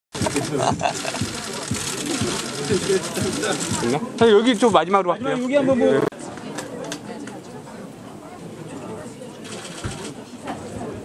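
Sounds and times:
chatter of voices: 0:00.1 - 0:11.0
camera shutters clicking: 0:00.2 - 0:03.9, 0:09.4 - 0:10.2.

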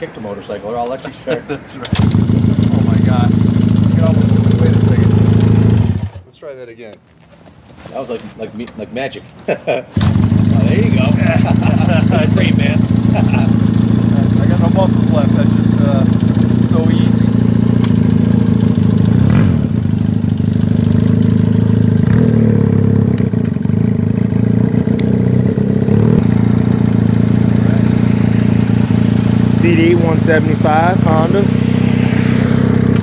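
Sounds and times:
motorcycle engine idling and revving: 0:01.8 - 0:06.3, 0:09.9 - 0:33.0.

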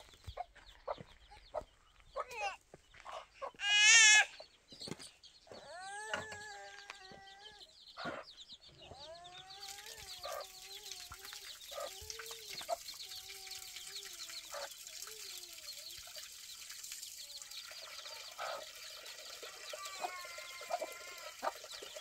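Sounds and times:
hen calling: 0:01.6 - 0:04.4, 0:17.6 - 0:22.0
water splashing onto ground: 0:09.6 - 0:22.0.

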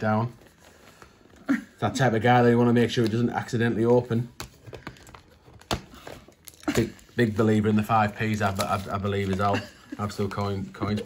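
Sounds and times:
wrapping paper rustling: 0:00.0 - 0:11.0
man speaking: 0:06.8 - 0:11.0.

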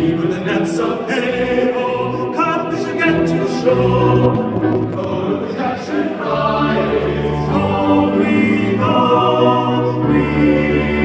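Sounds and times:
men singing in harmony: 0:00.0 - 0:11.0.

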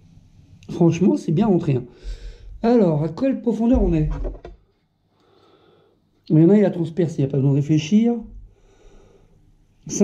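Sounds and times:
man speaking: 0:02.6 - 0:04.4.

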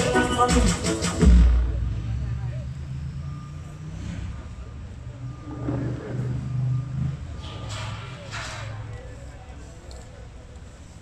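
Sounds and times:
vehicle engine humming: 0:00.0 - 0:11.0
faint high beep: 0:04.6 - 0:07.3.

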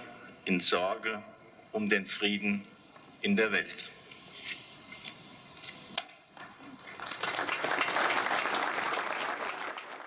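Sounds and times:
crowd applauding: 0:06.7 - 0:10.0.

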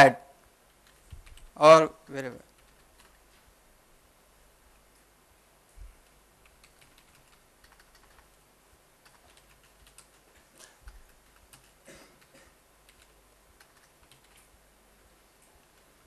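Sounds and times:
computer keyboard typing: 0:00.7 - 0:01.6, 0:02.5 - 0:03.2, 0:06.0 - 0:08.4, 0:09.0 - 0:14.5.

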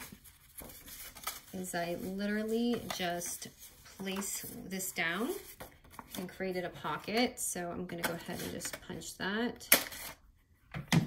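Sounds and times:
paper rustling: 0:00.0 - 0:06.3
woman speaking: 0:01.6 - 0:05.5, 0:06.2 - 0:09.7.

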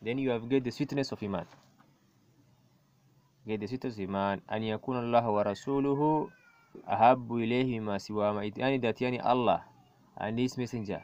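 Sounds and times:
man reading aloud: 0:00.0 - 0:01.6, 0:03.5 - 0:09.6, 0:10.2 - 0:11.0.

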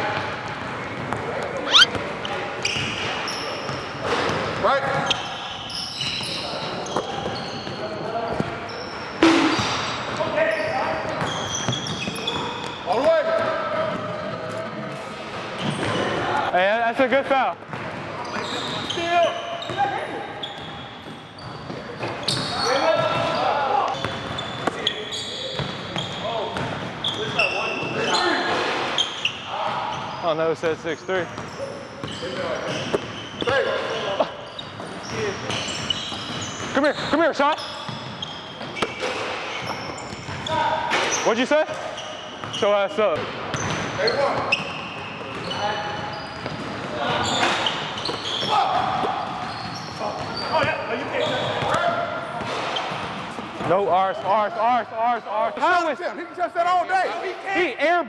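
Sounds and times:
players calling out: 0:01.4 - 0:03.4.

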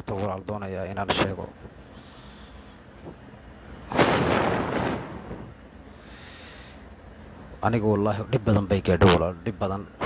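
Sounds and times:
faint hiss: 0:01.8 - 0:07.6
rush of noise on microphone: 0:03.8 - 0:05.6.

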